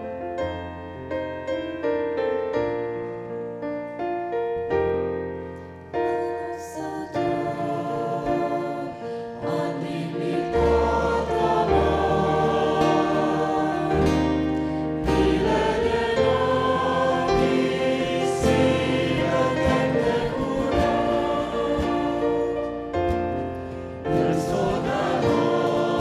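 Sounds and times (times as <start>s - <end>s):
group singing a hymn in harmony: 6.5s - 26.0s
acoustic guitar: 8.5s - 26.0s.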